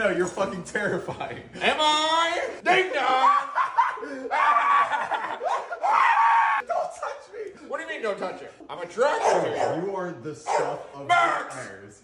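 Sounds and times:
man shrieking and laughing: 2.3s - 6.9s.

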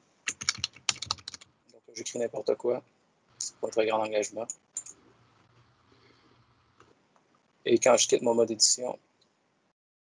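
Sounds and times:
computer keyboard typing: 0.3s - 1.5s, 4.5s - 5.6s.

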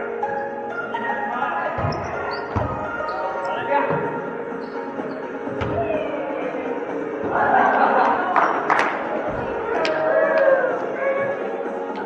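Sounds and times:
background music: 0.0s - 12.0s
voices: 0.0s - 12.0s
volleyball thuds in gym: 1.8s - 3.0s, 5.5s - 6.0s.

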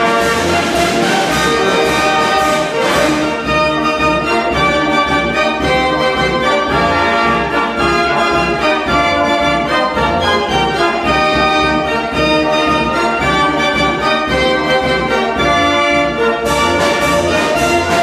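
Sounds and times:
mechanical dance organ playing: 0.0s - 18.0s.

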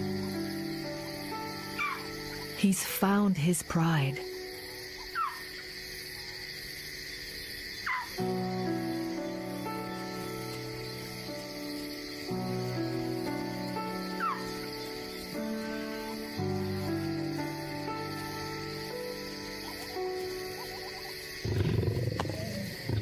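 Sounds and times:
background music of sustained chords: 0.0s - 23.0s.

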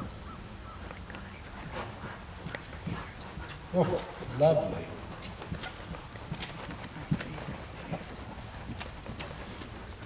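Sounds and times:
horse hooves trotting on sand: 0.0s - 10.0s.

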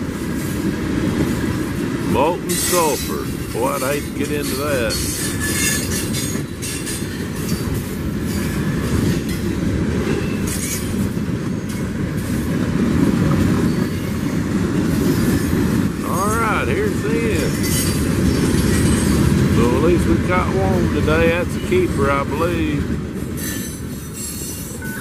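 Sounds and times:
freight train rumbling past: 0.0s - 25.0s
wheels clicking and squeaking: 2.5s - 19.3s, 23.2s - 25.0s.

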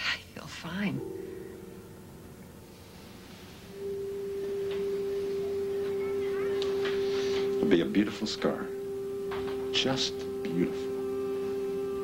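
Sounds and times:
steady electronic tone: 1.0s - 12.0s.

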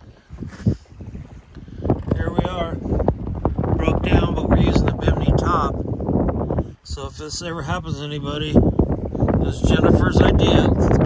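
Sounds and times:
motorboat engine rumble: 0.0s - 11.0s
wind buffeting microphone: 0.0s - 11.0s.

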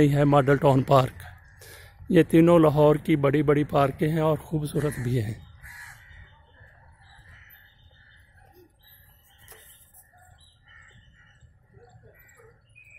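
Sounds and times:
faint bird calls: 4.8s - 12.9s.

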